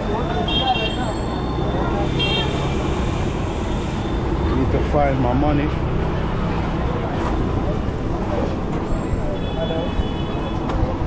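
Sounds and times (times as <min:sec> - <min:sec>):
rumble of passing vehicles: 0:00.0 - 0:11.0.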